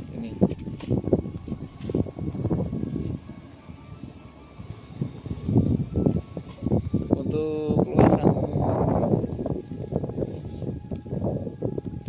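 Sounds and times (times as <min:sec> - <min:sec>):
background music with ticking beat: 0:00.0 - 0:12.0.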